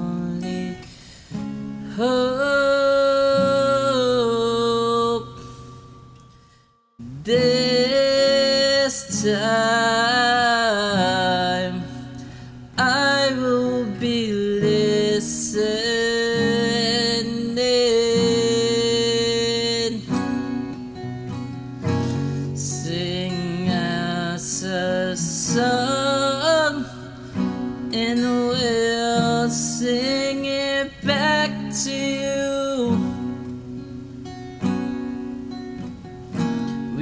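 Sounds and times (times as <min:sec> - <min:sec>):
acoustic guitar strumming chords: 0:00.0 - 0:37.0
person singing long wavering notes: 0:07.0 - 0:20.2.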